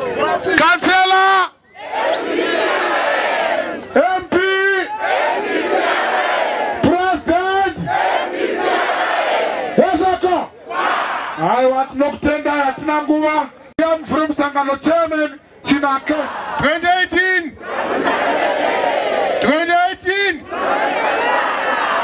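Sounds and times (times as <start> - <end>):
crowd shouting and cheering: 0.0 - 13.3, 17.5 - 22.0.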